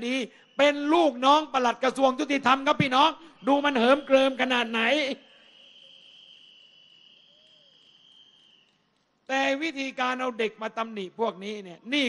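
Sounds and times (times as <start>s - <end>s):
crickets trilling: 0.3s - 9.0s.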